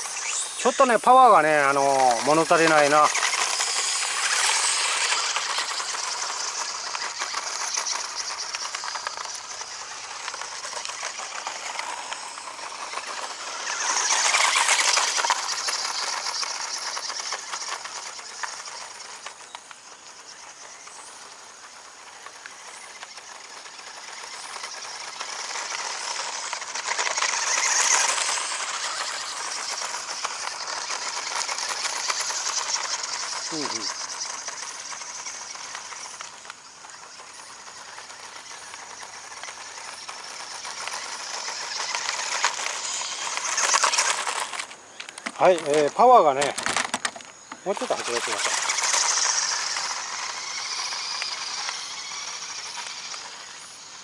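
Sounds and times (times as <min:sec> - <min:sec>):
rc car electric motor: 0:00.0 - 0:54.0
tyres crunching gravel: 0:00.0 - 0:54.0.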